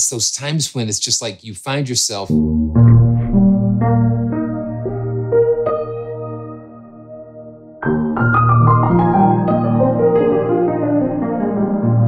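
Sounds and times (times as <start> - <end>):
piano chord ringing: 2.3 - 12.0.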